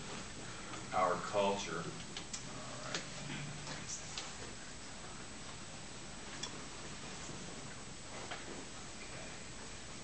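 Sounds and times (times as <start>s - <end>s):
room hiss: 0.0s - 10.0s.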